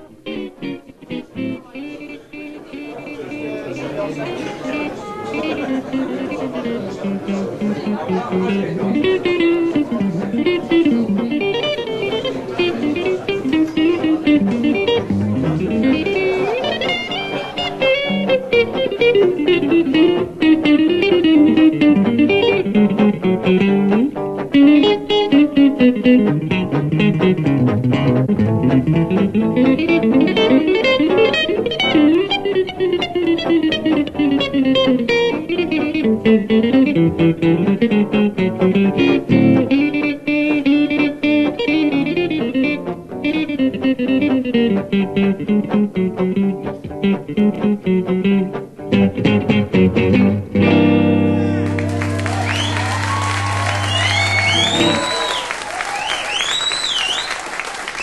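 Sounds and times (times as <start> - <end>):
electric guitar jazz solo: 0.0 - 57.3.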